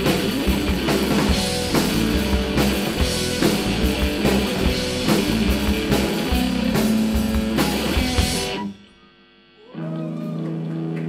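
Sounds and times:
live rock band playing: 0:00.0 - 0:08.8.

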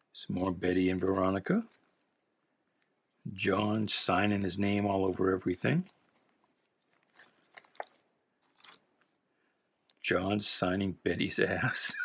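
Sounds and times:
plastic bags crinkling: 0:04.9 - 0:09.2.

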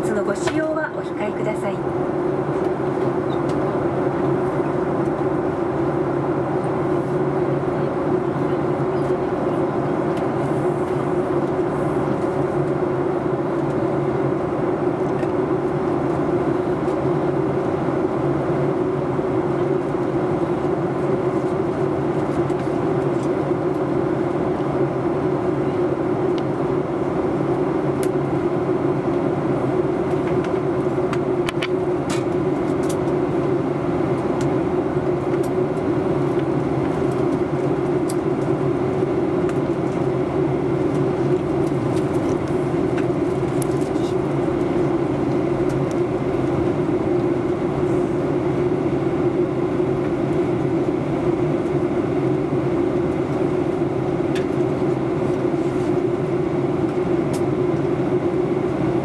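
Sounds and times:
airplane cabin drone in flight: 0:00.0 - 0:59.0.

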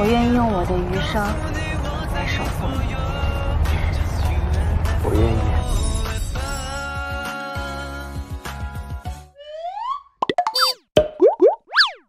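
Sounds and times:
cartoon clicks and pops: 0:09.8 - 0:12.0.

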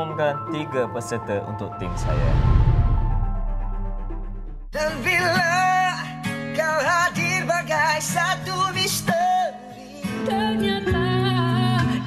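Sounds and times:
man singing with acoustic guitar: 0:04.8 - 0:12.0.

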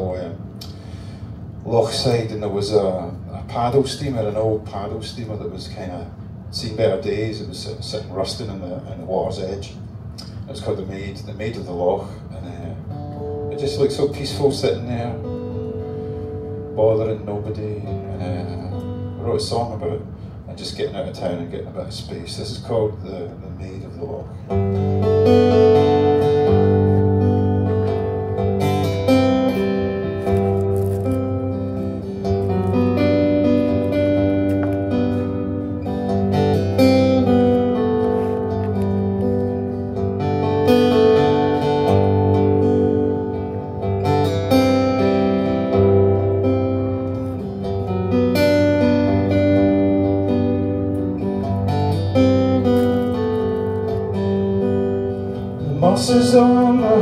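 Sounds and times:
acoustic guitar strumming chords: 0:12.6 - 0:20.4, 0:24.3 - 0:57.0.

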